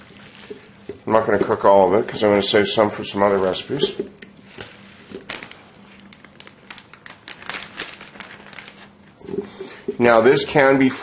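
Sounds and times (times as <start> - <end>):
plastic bag crinkling: 0.0 - 10.2.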